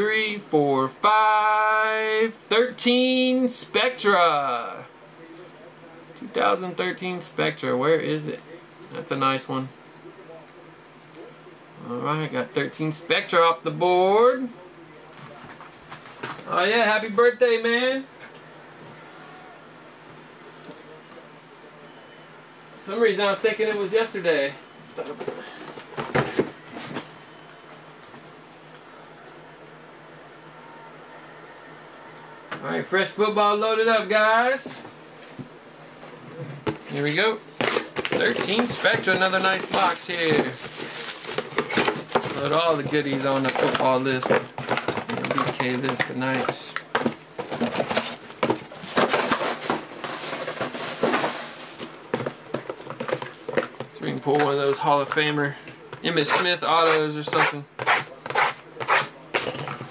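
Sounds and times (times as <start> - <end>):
box knocks and rustles: 37.6 - 53.9.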